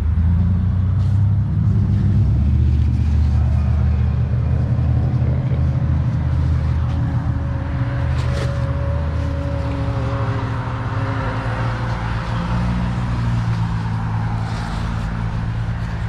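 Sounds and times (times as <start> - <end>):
vehicle engine droning: 0.0 - 16.0.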